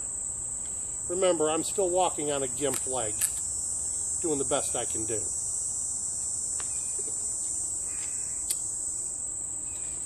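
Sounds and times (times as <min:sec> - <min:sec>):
insects chorus drone: 0:00.0 - 0:10.0
sharp click: 0:02.7 - 0:03.5.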